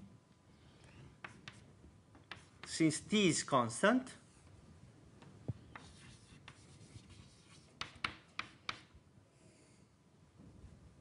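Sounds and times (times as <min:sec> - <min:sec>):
chalk scratching on blackboard: 0:01.2 - 0:01.6, 0:02.3 - 0:02.8, 0:05.7 - 0:08.9
sharp chalk taps: 0:01.2 - 0:02.8, 0:05.6 - 0:08.9.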